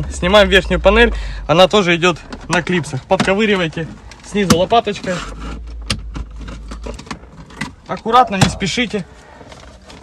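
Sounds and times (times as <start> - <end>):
plastic scraping and rustling: 2.0 - 10.0.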